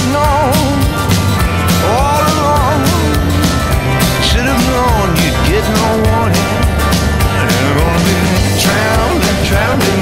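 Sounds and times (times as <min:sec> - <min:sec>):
person singing: 0:00.0 - 0:10.0
steady drum beat: 0:00.0 - 0:10.0.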